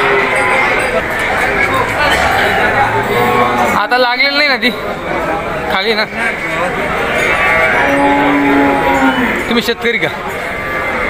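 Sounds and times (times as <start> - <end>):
cattle mooing: 0.0 - 4.2, 7.2 - 9.7.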